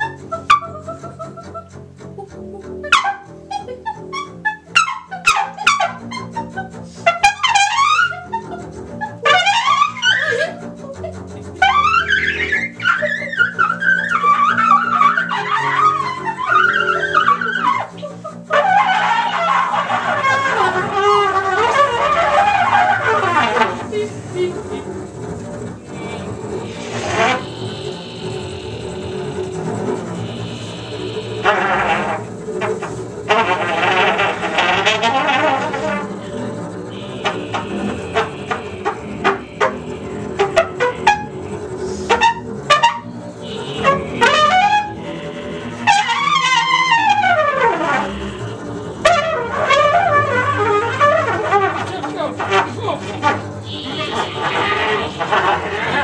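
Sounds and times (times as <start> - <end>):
bowed double bass: 0.0 - 56.0
trumpet: 2.8 - 10.5, 11.4 - 56.0.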